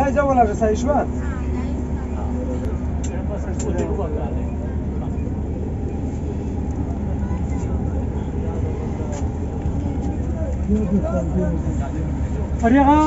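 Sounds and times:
bus engine idling: 0.0s - 13.0s
faint voices: 0.0s - 13.0s.

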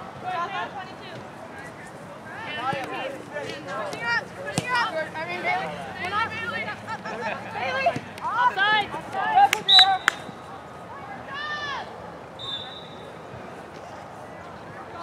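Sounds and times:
players and spectators shouting: 2.2s - 13.3s
referee's whistle blasts: 9.6s - 10.5s, 12.4s - 13.2s.

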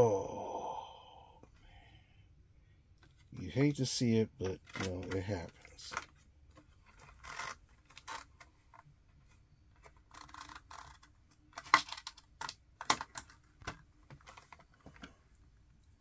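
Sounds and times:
plastic miniatures clicking: 4.5s - 7.1s.

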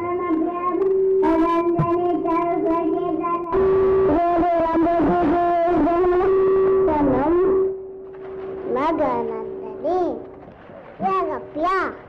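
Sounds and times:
plucked string instrument: 8.1s - 11.7s.

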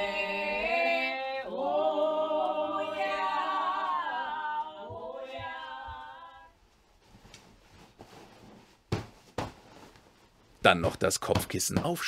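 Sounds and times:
women singing a cappella: 0.0s - 6.6s
pillow thumps: 7.0s - 12.0s.

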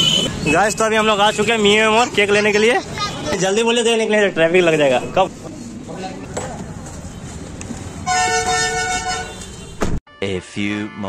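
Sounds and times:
horn toot: 8.0s - 9.9s.

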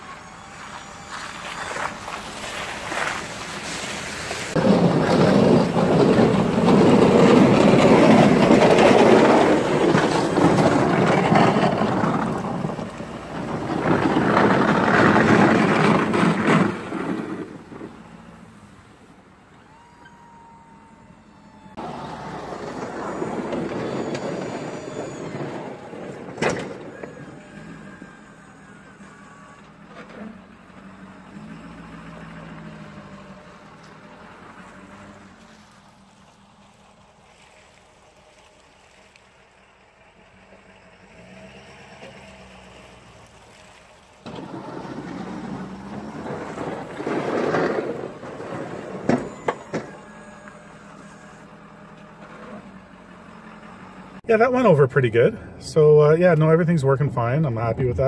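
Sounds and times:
diesel truck engine: 0.0s - 58.0s
snowplow blade scraping: 0.0s - 58.0s.

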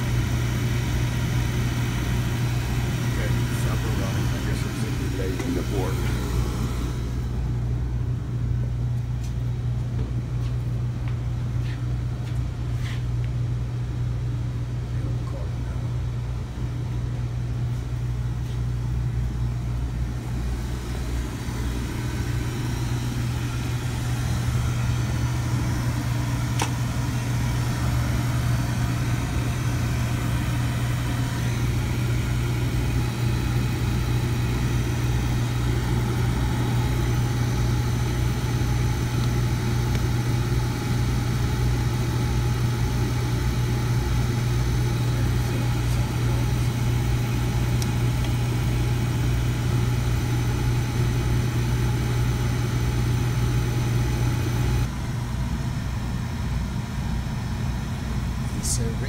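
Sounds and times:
oil burner humming and rushing: 0.0s - 59.0s.

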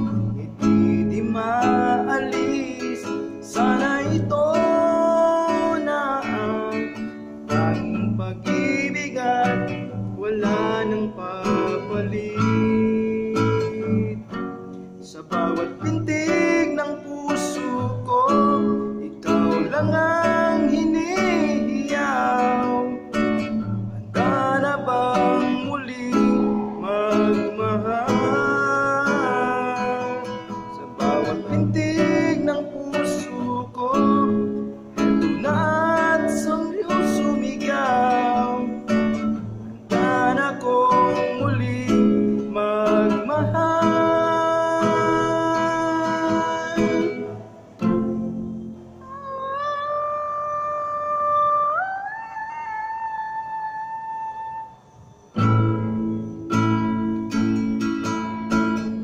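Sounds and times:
acoustic guitar strumming: 0.0s - 59.0s
person singing with vibrato: 0.0s - 59.0s.

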